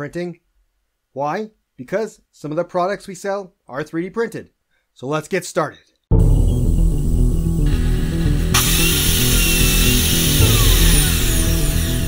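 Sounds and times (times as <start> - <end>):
loud intro music: 6.1 - 12.0
power tool sound effects: 7.6 - 12.0
falling pitch glide: 7.7 - 12.0
hissing layer: 8.5 - 12.0.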